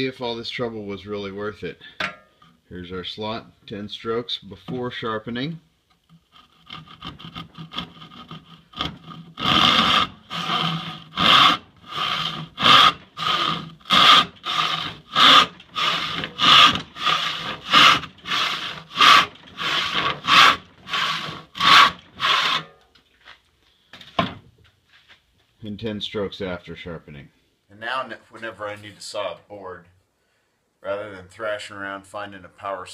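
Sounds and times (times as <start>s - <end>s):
hand saw rasping through board: 6.2s - 22.7s.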